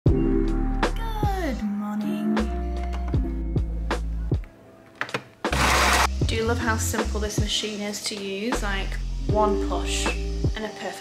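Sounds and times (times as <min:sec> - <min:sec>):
background music: 0:00.1 - 0:11.0
coffee machine whirring: 0:05.5 - 0:06.1.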